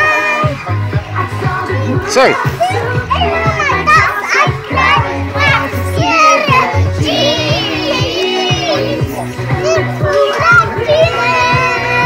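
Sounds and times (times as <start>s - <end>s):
background music with bass: 0.0s - 12.0s
children calling and chattering: 0.0s - 12.0s.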